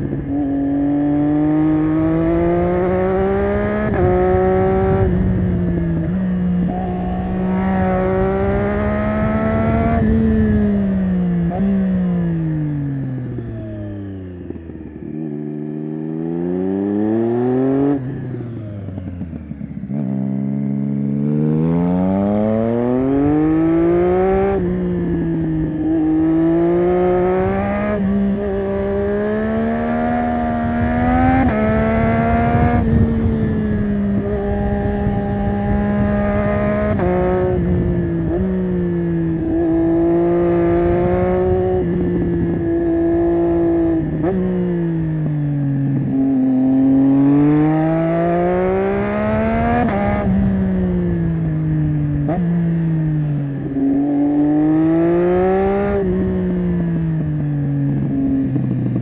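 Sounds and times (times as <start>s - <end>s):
wind rushing over microphone: 0.0s - 13.5s, 21.2s - 59.0s
motorcycle engine revving: 0.0s - 59.0s.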